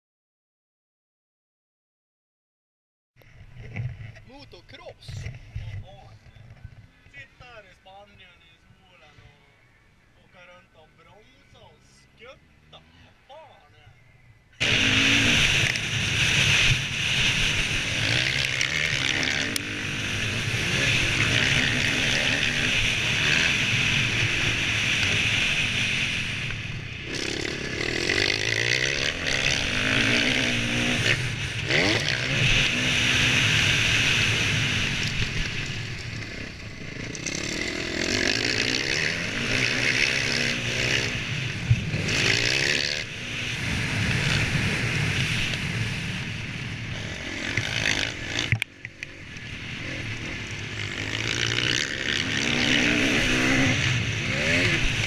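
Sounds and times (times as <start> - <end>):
wind noise on microphone: 14.6 - 18.3
motorbike engine revving: 14.6 - 55.0.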